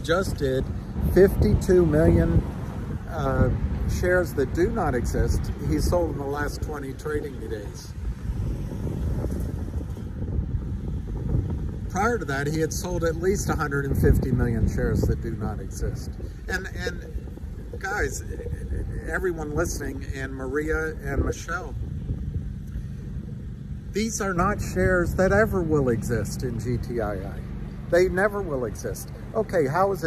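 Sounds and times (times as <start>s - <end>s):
city background rumble: 0.0s - 30.0s
wind buffeting microphone: 0.0s - 30.0s.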